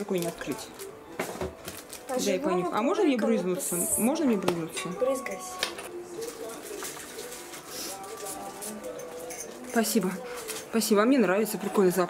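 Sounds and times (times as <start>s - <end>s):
faint voices: 2.1s - 12.0s.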